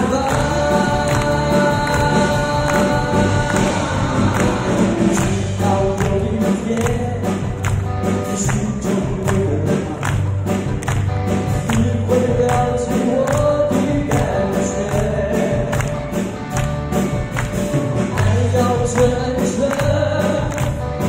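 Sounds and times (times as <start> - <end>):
man singing into a microphone: 0.0 - 10.3, 11.6 - 16.1, 18.1 - 21.0
rock band playing: 0.0 - 21.0.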